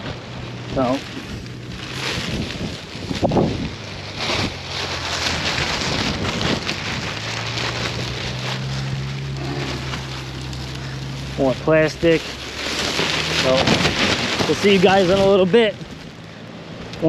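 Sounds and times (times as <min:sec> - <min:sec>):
plastic bag rustling: 0:00.0 - 0:16.8.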